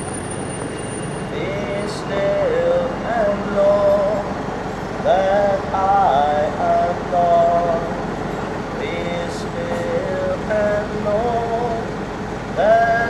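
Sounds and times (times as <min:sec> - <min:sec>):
street traffic hum: 0:00.0 - 0:13.0
person singing long held notes: 0:01.3 - 0:04.4, 0:05.0 - 0:08.1, 0:08.8 - 0:12.0, 0:12.6 - 0:13.0.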